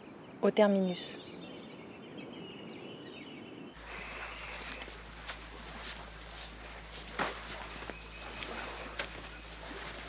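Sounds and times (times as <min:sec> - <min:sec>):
bird chirps: 0:00.7 - 0:10.0
steady low hum: 0:03.8 - 0:10.0.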